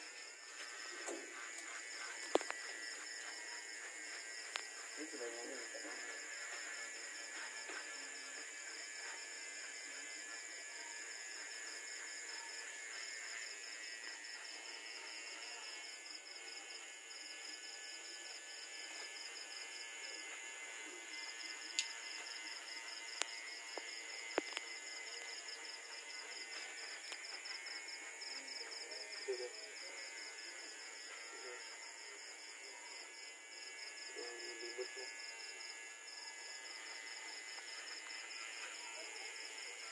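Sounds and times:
insects chirping: 0:00.0 - 0:39.9.

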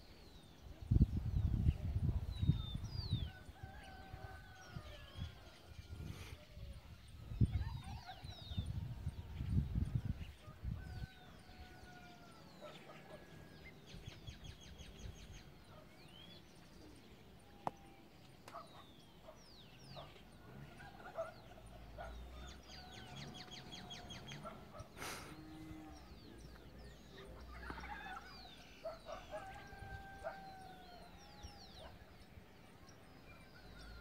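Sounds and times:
small birds chirping: 0:00.0 - 0:34.0.

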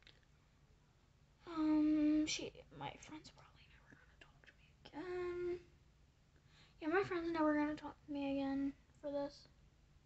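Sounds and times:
person whispering: 0:02.8 - 0:05.7.

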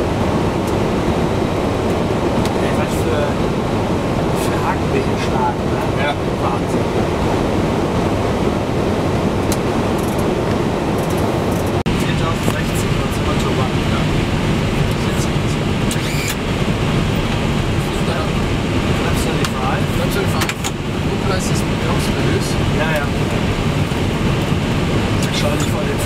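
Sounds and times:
aircraft engine noise: 0:00.0 - 0:26.0
faint voices: 0:04.2 - 0:07.2, 0:11.7 - 0:16.3, 0:17.7 - 0:23.3, 0:25.2 - 0:26.0.

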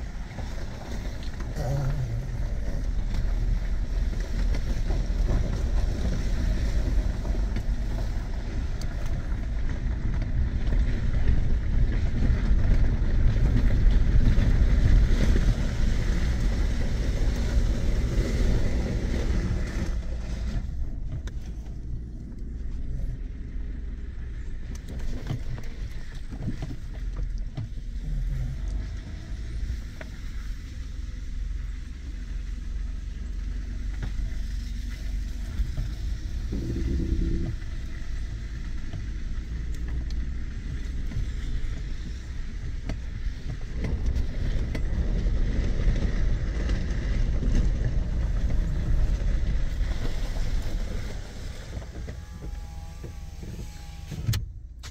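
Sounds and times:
truck rumbling over rough ground: 0:00.0 - 0:54.9.

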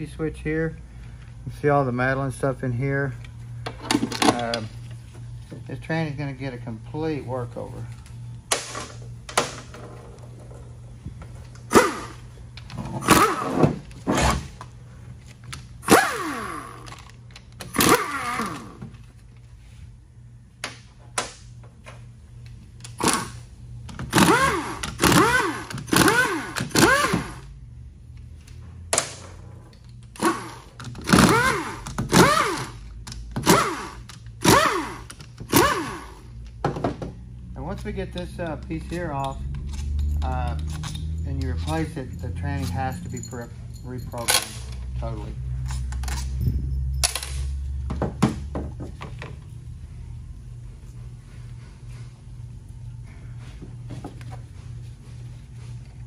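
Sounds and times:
power driver whirring: 0:11.5 - 0:14.5, 0:15.8 - 0:18.8, 0:22.8 - 0:27.5, 0:30.1 - 0:32.8, 0:33.4 - 0:36.3
metal bolts and tools clicking: 0:37.7 - 0:44.9, 0:45.6 - 0:47.5.

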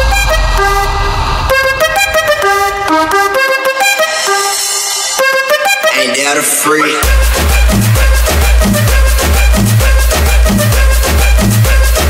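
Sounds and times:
dance music lead melody: 0:00.0 - 0:12.0
heavy bass: 0:00.0 - 0:12.0.

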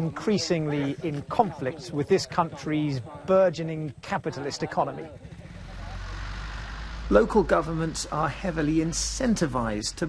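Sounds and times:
truck engine rumbling: 0:05.0 - 0:10.0.

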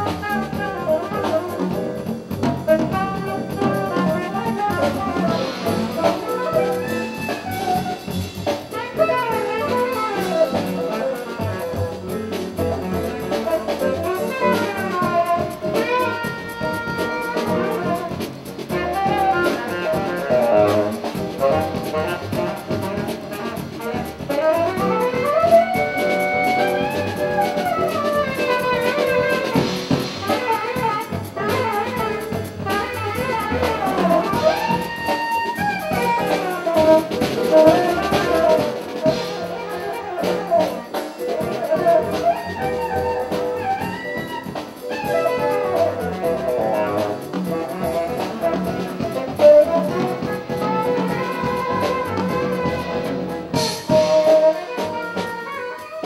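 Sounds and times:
drum kit and rhythm section: 0:00.0 - 0:56.0
saxophone melody: 0:00.0 - 0:56.0.

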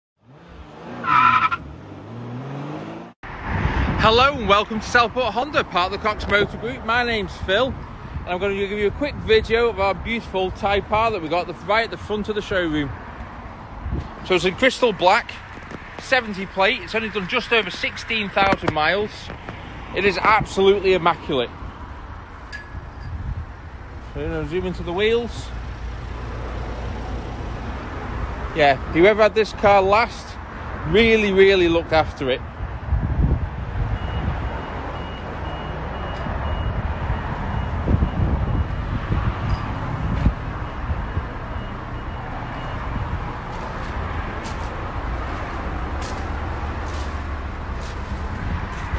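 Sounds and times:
car engine revving: 0:00.2 - 0:03.2
tyre squeal: 0:01.0 - 0:01.7
wind rumble on microphone: 0:03.2 - 0:11.3, 0:12.8 - 0:14.6, 0:22.0 - 0:25.6, 0:31.9 - 0:34.8, 0:36.1 - 0:48.9.

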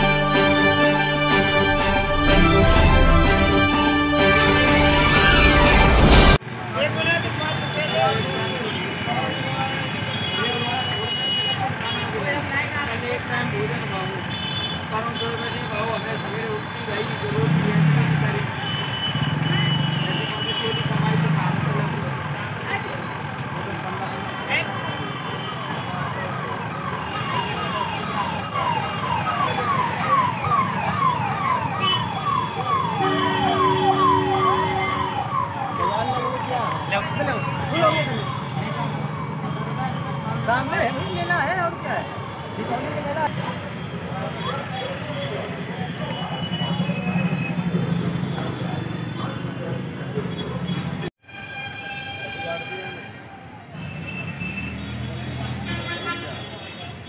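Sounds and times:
fairground rumble: 0:00.0 - 0:07.4
people talking: 0:06.4 - 0:51.1
electronic siren whooping: 0:26.8 - 0:40.1
low two-note tone: 0:33.0 - 0:35.4.

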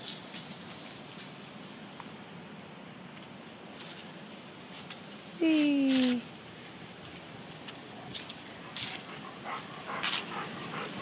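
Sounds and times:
dog breathing hard: 0:08.0 - 0:11.0.

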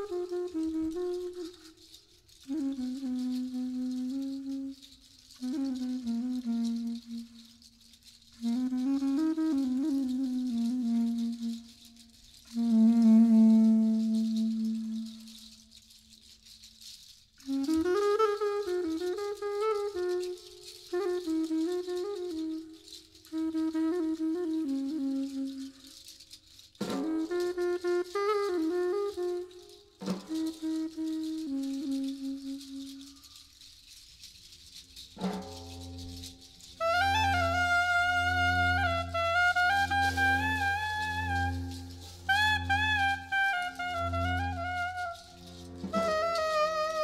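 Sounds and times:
saxophone low notes: 0:00.0 - 0:15.8, 0:26.8 - 0:33.4, 0:35.0 - 0:47.0
hand shaker rattling: 0:00.0 - 0:47.0
tenor saxophone high note: 0:36.7 - 0:47.0.

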